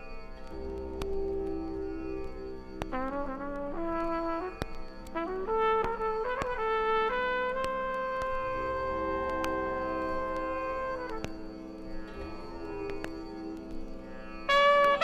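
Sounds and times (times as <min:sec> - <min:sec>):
sustained drone: 0:00.0 - 0:15.0
trumpet playing: 0:02.9 - 0:11.3, 0:14.5 - 0:15.0.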